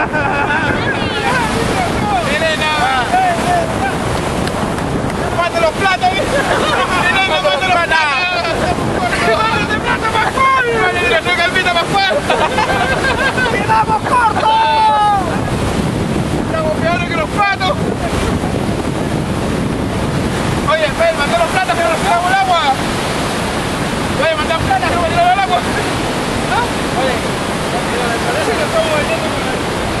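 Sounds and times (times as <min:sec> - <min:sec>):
people shouting and whooping: 0:00.0 - 0:04.2, 0:05.3 - 0:15.6
whitewater rapids rushing: 0:00.0 - 0:30.0
wind buffeting microphone: 0:00.0 - 0:30.0.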